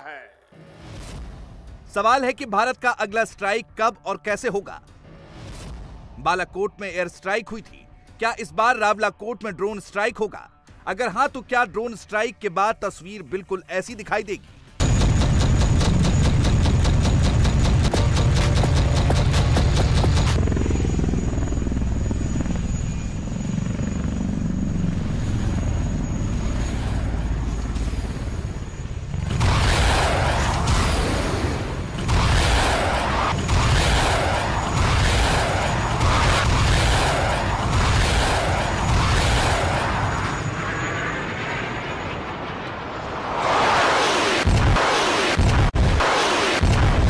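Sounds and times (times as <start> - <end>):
helicopter rotor and engine drone: 14.0 - 47.0
missile rushing in flight: 26.6 - 47.0.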